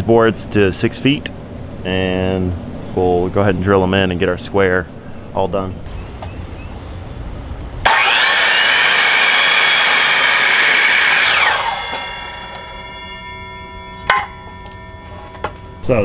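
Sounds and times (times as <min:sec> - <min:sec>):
miter saw cutting wood: 0:07.8 - 0:13.4.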